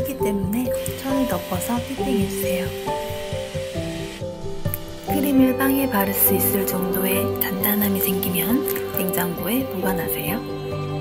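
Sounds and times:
electric hand mixer whirring: 0.0s - 10.4s
background music with beat: 0.0s - 11.0s.

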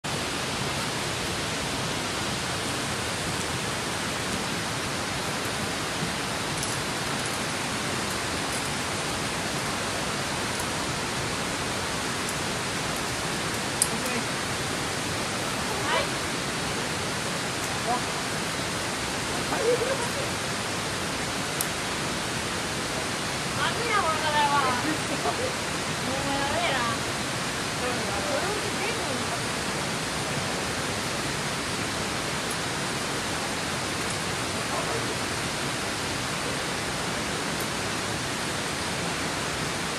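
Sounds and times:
river water rushing: 0.0s - 39.9s
people talking: 13.9s - 14.3s, 15.6s - 17.0s, 17.8s - 18.1s, 19.3s - 20.4s, 23.6s - 27.0s, 27.8s - 29.6s, 34.6s - 35.2s
person laughing: 19.6s - 20.3s.

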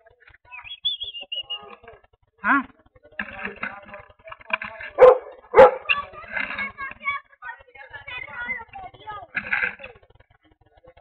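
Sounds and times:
voices: 0.0s - 11.0s
dog barking: 5.0s - 6.1s.

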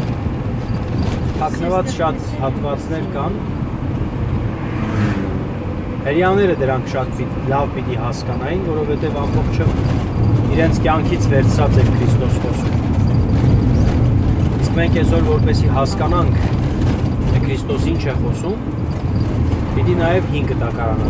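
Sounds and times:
car engine and road noise: 0.0s - 21.0s
voices talking: 1.2s - 3.5s, 6.0s - 12.9s, 13.5s - 18.8s, 19.6s - 21.0s.

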